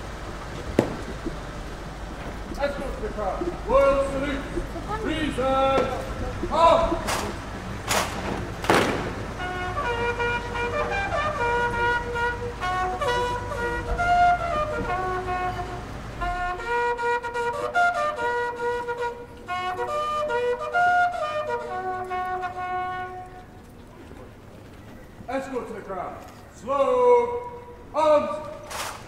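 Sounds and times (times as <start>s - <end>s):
military band flute melody: 0.0s - 25.2s, 27.3s - 29.0s
brief thump: 0.8s - 1.4s.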